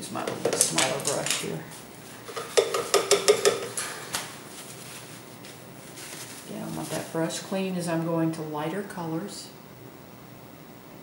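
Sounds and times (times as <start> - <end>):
paintbrushes rattling in container: 2.2 - 7.3.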